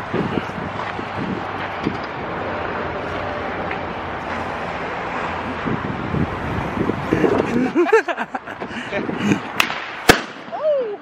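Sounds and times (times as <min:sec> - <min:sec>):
wind noise on microphone: 0:00.0 - 0:10.8
city traffic rumble: 0:00.0 - 0:11.0.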